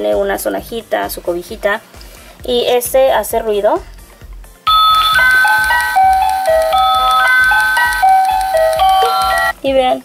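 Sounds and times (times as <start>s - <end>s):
electronic lullaby beeping notes: 4.7s - 9.6s.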